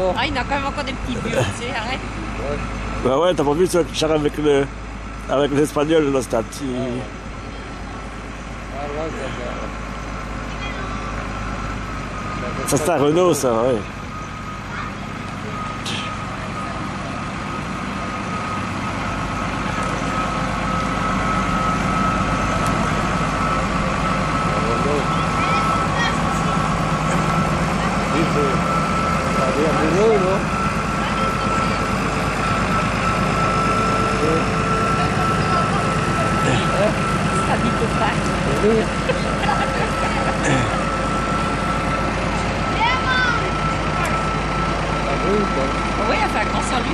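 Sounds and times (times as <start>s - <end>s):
high-pitched whine: 0.0s - 46.9s
tractor diesel engine running: 0.0s - 46.9s.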